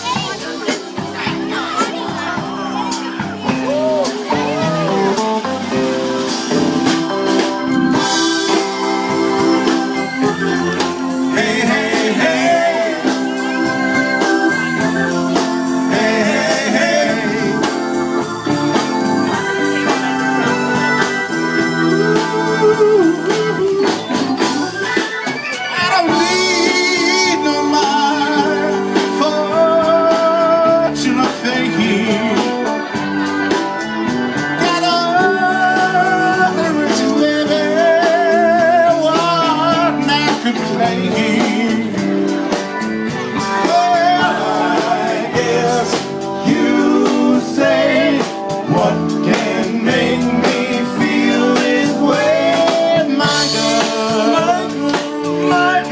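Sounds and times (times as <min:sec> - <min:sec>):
live band playing: 0:00.0 - 0:55.9
person singing: 0:07.3 - 0:55.9.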